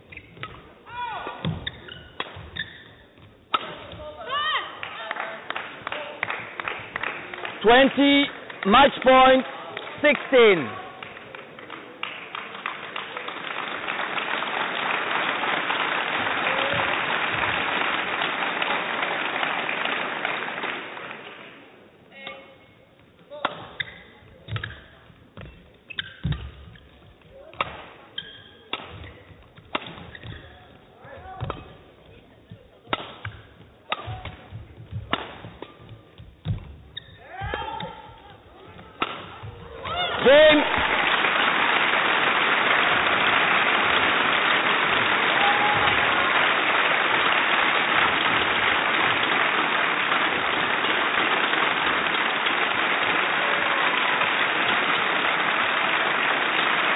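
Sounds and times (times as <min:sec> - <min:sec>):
racket striking shuttlecock: 0:01.3 - 0:04.1, 0:23.4 - 0:31.8, 0:32.8 - 0:38.1, 0:38.8 - 0:39.8
crowd applause and cheering: 0:04.3 - 0:21.6, 0:39.4 - 0:56.9.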